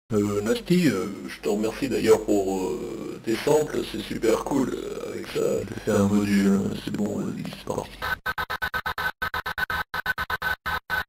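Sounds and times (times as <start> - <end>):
stuttering chopped sample hits: 8.0 - 11.0.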